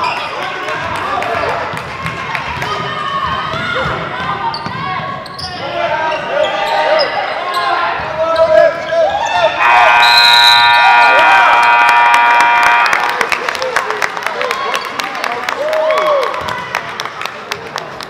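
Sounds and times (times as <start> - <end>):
sneakers squeaking on wooden floor: 3.8 - 8.6
scoreboard horn: 9.6 - 13.1
scattered clapping: 11.6 - 18.0.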